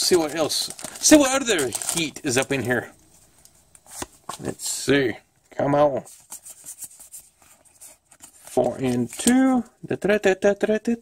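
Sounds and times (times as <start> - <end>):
trading cards clicking and rustling: 8.2 - 9.6.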